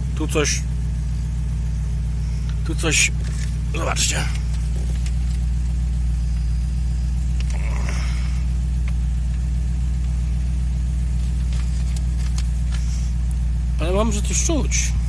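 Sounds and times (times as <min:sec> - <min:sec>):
low mechanical hum in car: 0:00.0 - 0:15.0
paper leaflet rustling: 0:11.2 - 0:13.1.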